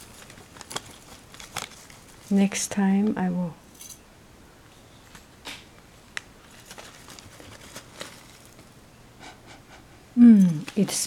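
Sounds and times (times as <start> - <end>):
tea packet rustling: 0.0 - 2.8, 6.1 - 8.7, 10.5 - 11.0
person sniffing: 9.2 - 10.4.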